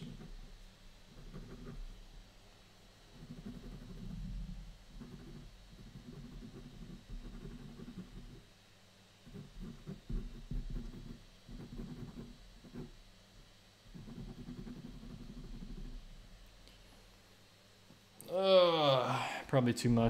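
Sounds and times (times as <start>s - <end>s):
pen scratching on paper: 0.0s - 0.5s, 1.1s - 1.9s, 3.2s - 8.5s, 9.2s - 13.0s, 13.9s - 16.1s.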